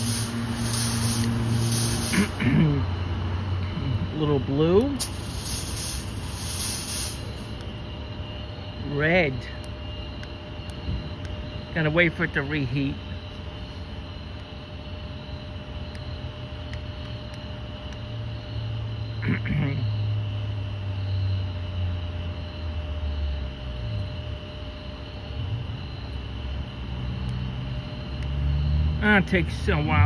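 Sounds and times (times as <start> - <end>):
insect chirring: 0.0 - 30.0.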